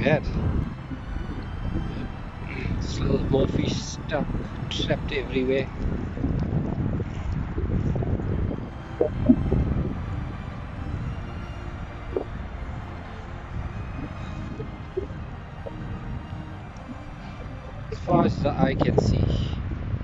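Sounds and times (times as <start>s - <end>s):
low outdoor rumble: 0.0s - 20.0s.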